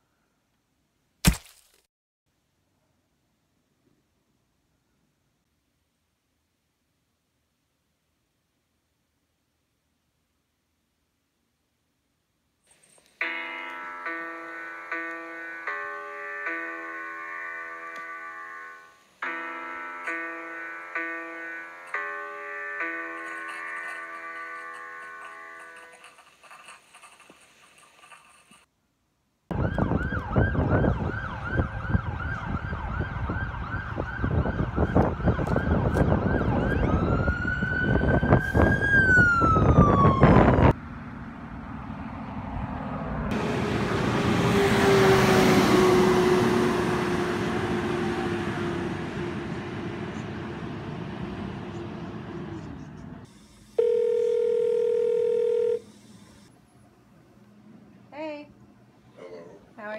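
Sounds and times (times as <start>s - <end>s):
siren-like wail: 29.5s - 52.5s
telephone tone: 53.8s - 56.5s.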